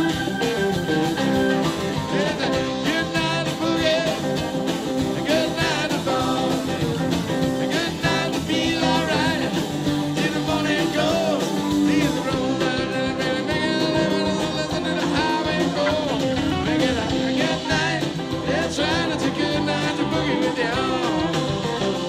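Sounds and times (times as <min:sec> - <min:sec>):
bass guitar: 0:00.0 - 0:22.0
drums: 0:00.0 - 0:22.0
electric and acoustic guitars: 0:00.0 - 0:22.0
keyboard: 0:00.0 - 0:22.0.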